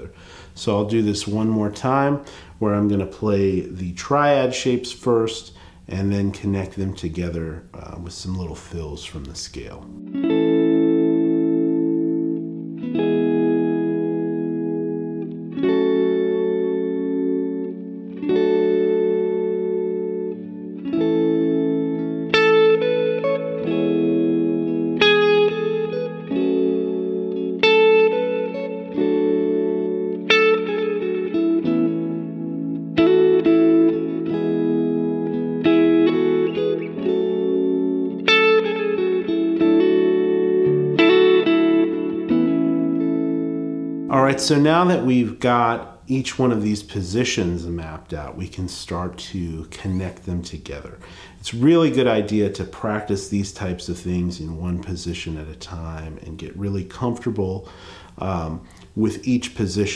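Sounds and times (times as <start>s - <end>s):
electric guitar chords: 0.0s - 5.0s, 5.6s - 46.6s, 47.2s - 59.9s
electric guitar single-note fills: 9.8s - 45.8s.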